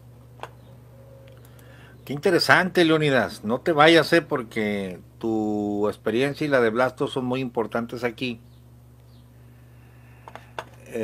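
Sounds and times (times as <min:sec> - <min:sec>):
low steady hum: 0:00.0 - 0:11.0
small clicks: 0:01.2 - 0:01.7.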